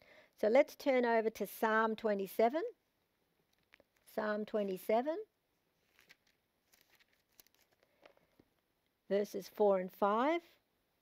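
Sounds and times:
thin pages being turned: 0:05.8 - 0:08.2.

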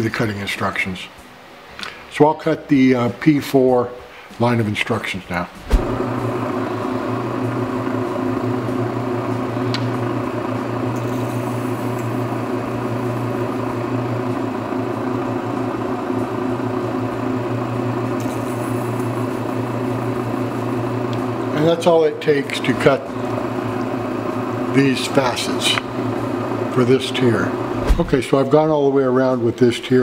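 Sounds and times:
motor humming: 0:05.6 - 0:18.2, 0:23.1 - 0:28.3
small click: 0:09.7 - 0:10.0.

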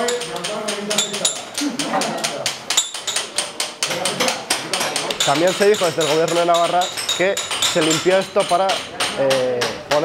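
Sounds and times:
hand tools chipping masonry: 0:00.0 - 0:10.0.

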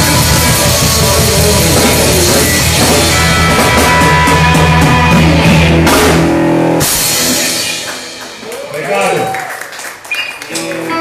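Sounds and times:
full-band crash: 0:00.0 - 0:08.5
electric bass: 0:00.0 - 0:08.9
drum kit: 0:00.0 - 0:09.5
electric guitar: 0:00.0 - 0:11.0.

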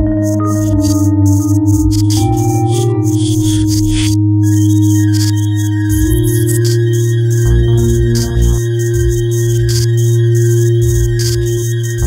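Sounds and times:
low synthesizer drone: 0:00.0 - 0:12.0.

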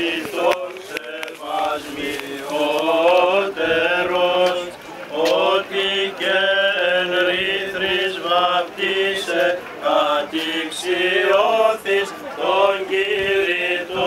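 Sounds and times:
chant melody: 0:00.0 - 0:14.0.

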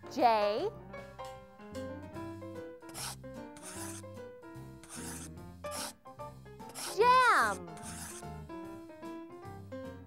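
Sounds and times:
background music: 0:00.0 - 0:10.0
pen scratching on paper: 0:02.9 - 0:04.1, 0:04.8 - 0:06.0, 0:06.7 - 0:08.3.

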